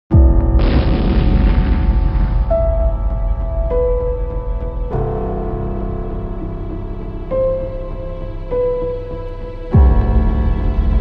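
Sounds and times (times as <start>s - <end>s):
deep cinematic boom: 0.1s - 8.5s
sustained music tones: 0.2s - 11.0s
loud rushing noise: 0.6s - 5.0s.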